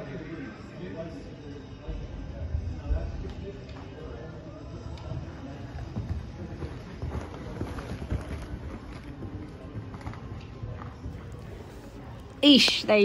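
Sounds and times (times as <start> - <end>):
hooves cantering on sand: 4.6 - 12.8.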